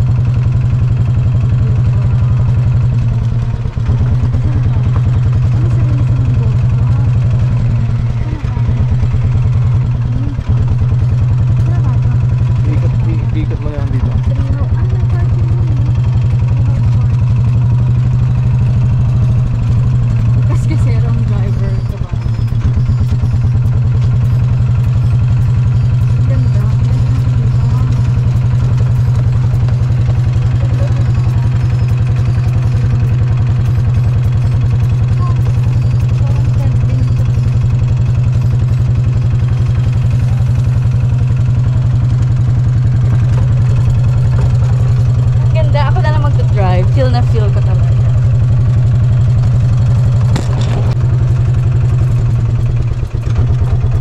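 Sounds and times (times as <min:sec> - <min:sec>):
engine droning with fast pulse: 0:00.0 - 0:54.0.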